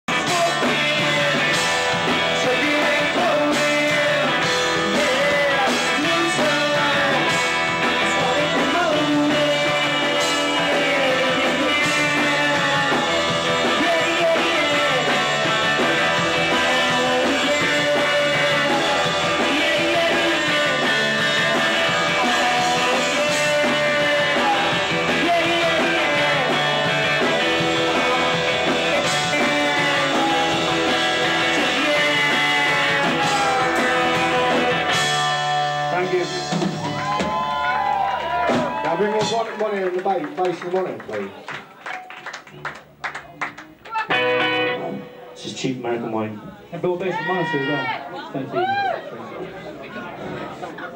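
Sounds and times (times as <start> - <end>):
man singing: 0.0 - 36.8
rock band playing: 0.1 - 48.1.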